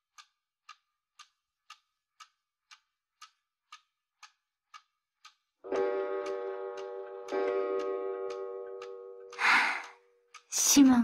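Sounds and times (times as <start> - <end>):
clock ticking: 0.0 - 11.0.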